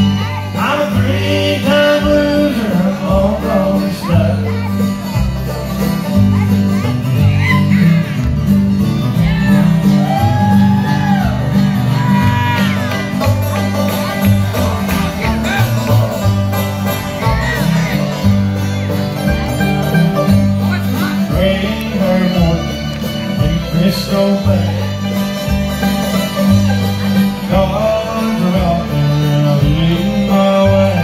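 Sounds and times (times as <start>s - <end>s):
bluegrass band playing: 0.0s - 31.0s
fiddle: 0.0s - 31.0s
guitar: 0.0s - 31.0s
mandolin: 0.0s - 31.0s
upright bass notes: 0.0s - 31.0s.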